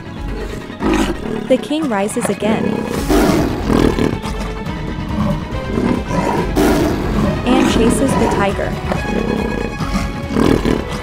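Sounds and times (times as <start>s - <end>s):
big cat roaring: 0.0s - 11.0s
cartoon background music: 0.0s - 11.0s.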